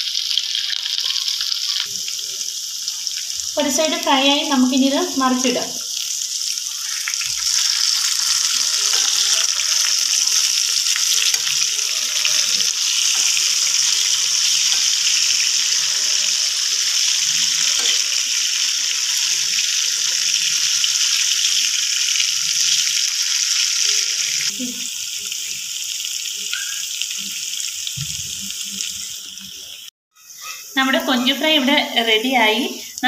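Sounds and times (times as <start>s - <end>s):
food sizzling in a wok: 0.0s - 33.0s.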